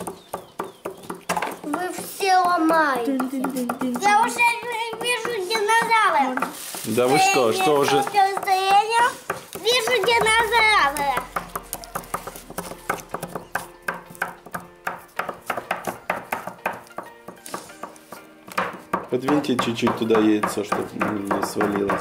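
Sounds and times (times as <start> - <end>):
small tools tapping and scraping: 0.0 - 22.0
child's voice: 1.6 - 6.5, 7.1 - 11.4.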